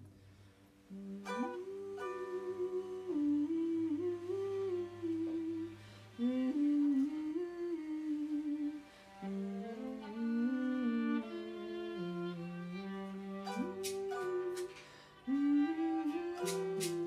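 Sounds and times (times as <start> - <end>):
person humming a slow melody: 0.9 - 17.0.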